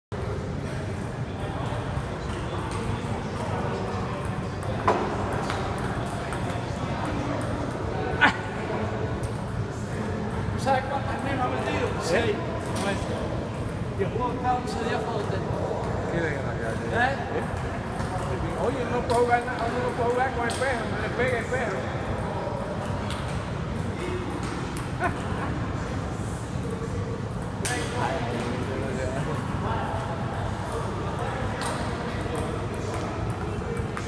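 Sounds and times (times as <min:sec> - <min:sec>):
voices in a hall: 0:00.1 - 0:34.0
table tennis balls clicking: 0:31.6 - 0:34.0.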